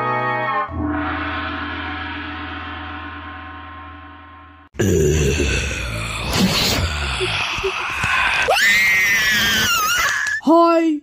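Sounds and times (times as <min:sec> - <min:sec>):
high-pitched scream: 0:06.3 - 0:10.4.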